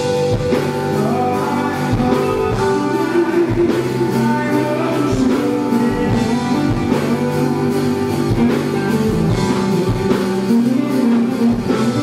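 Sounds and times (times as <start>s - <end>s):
electric guitar: 0.0s - 12.0s
drum beat: 5.0s - 12.0s.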